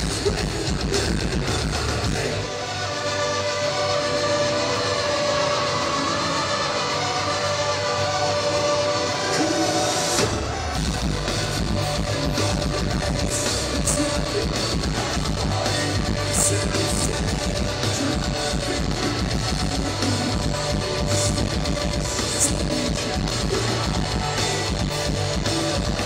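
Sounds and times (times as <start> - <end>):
electric guitar: 0.0 - 26.0
live metal band: 0.0 - 26.0.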